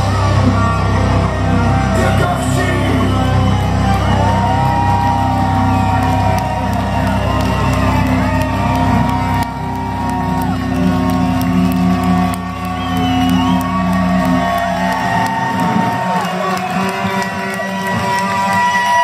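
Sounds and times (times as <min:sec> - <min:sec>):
crowd cheering and whooping: 0:00.0 - 0:19.0
heavy metal band playing live: 0:00.0 - 0:19.0.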